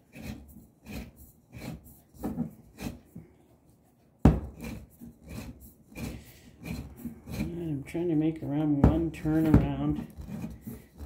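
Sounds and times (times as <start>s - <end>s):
cutter wheel scraping steel: 0.0s - 3.1s, 4.4s - 11.0s.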